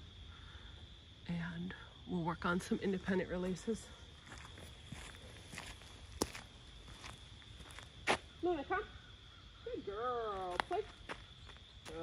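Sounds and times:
footsteps on gravel: 0:04.2 - 0:08.3, 0:10.4 - 0:12.0.

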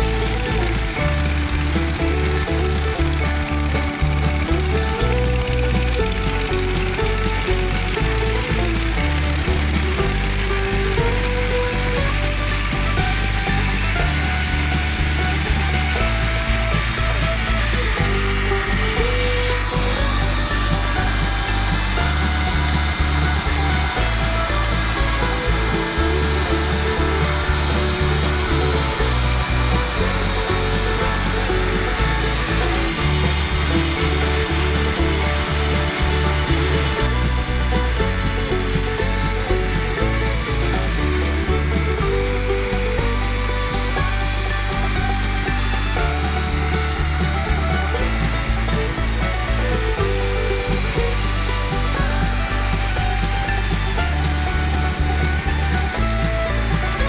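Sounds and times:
background music: 0:00.0 - 0:57.0
coffee huller engine running: 0:00.0 - 0:57.0.

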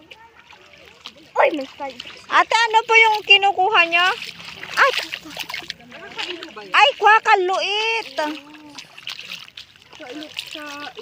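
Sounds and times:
bare feet wading through water: 0:00.0 - 0:11.0.

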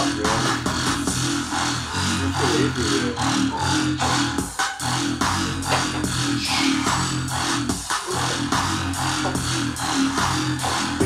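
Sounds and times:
electronic background music: 0:00.0 - 0:11.0.

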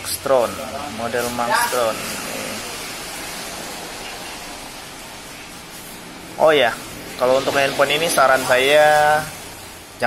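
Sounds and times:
workplace background noise: 0:00.0 - 0:10.0.

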